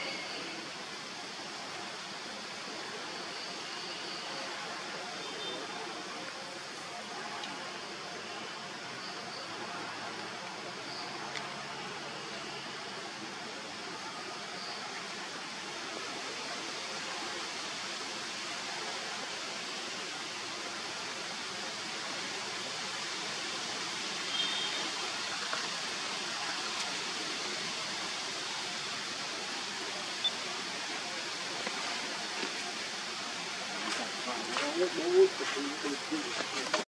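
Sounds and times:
outdoor background hiss: 0.0s - 36.9s.

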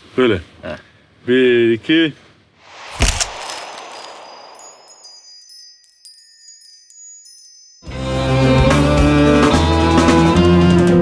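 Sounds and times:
sharp hit sound effect: 2.6s - 5.4s
swish: 2.6s - 5.5s
tinkling chime tones: 3.3s - 8.9s.

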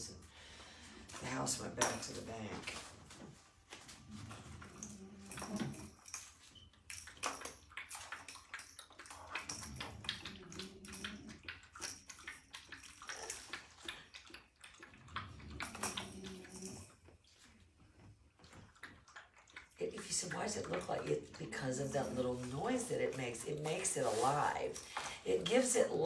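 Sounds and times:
puppies chewing rattling toy: 3.8s - 26.0s.

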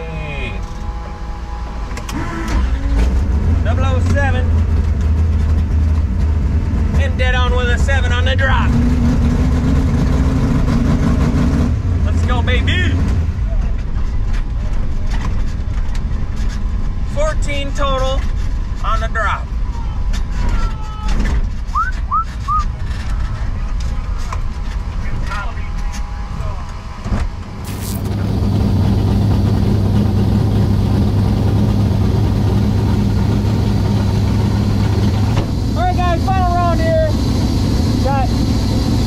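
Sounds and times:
car engine at full throttle: 0.0s - 20.5s, 21.1s - 39.0s.

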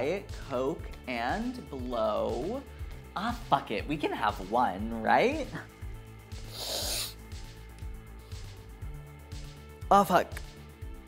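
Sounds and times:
person snorting through straw: 6.5s - 7.2s.

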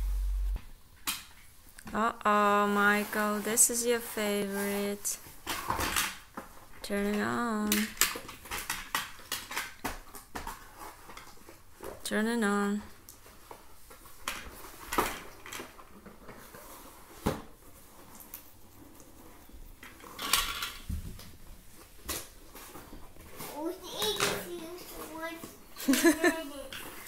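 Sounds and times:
child's voice: 23.4s - 26.8s
child laughing: 25.8s - 26.7s.

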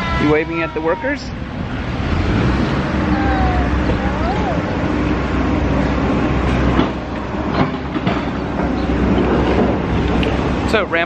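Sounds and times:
stroller wheels rolling on asphalt: 0.0s - 11.0s.

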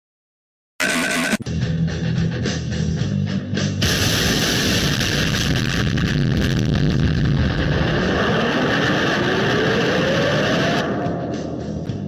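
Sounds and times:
whine rising in pitch: 0.8s - 1.4s, 6.4s - 11.8s
continuous explosion noise: 3.8s - 10.8s.

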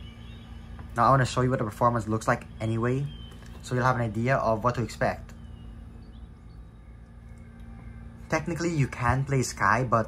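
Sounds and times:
faint held tone: 0.0s - 10.0s
low hum: 0.0s - 10.0s.

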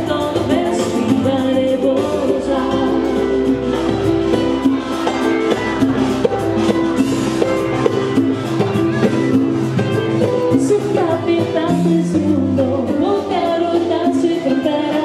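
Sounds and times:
woman singing: 0.0s - 3.9s, 10.5s - 15.0s
backing instruments: 0.0s - 15.0s
drum beat: 1.8s - 12.3s.

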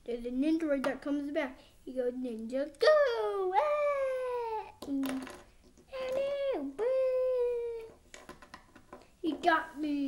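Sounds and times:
boy wailing: 6.0s - 7.9s.

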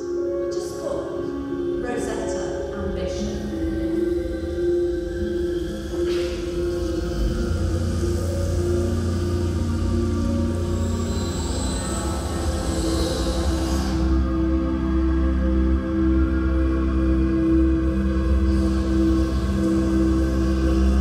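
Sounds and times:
cinematic music over speakers: 0.0s - 21.0s
deep rumble: 1.6s - 21.0s.

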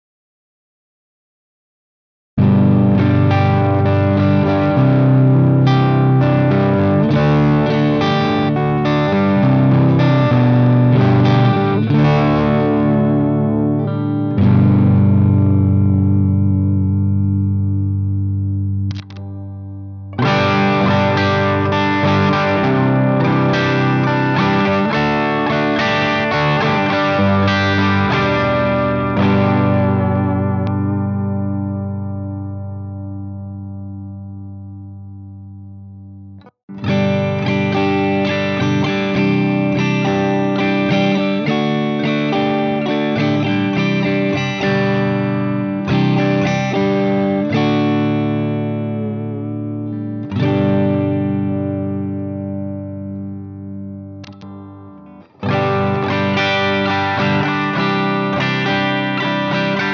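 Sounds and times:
distorted electric guitar riff: 2.4s - 59.9s.

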